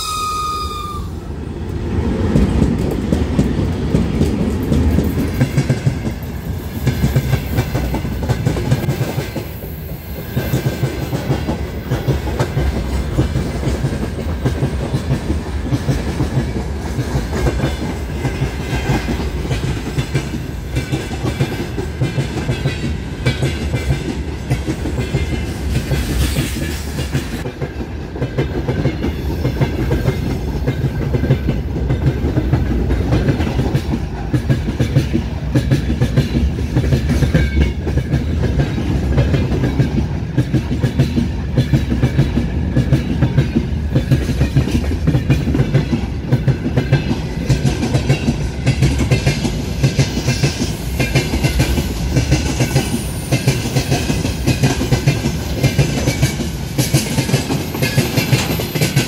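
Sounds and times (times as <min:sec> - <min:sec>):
rumble of train wheels: 0:00.0 - 0:59.0
clickety-clack over rail joints: 0:01.6 - 0:59.0.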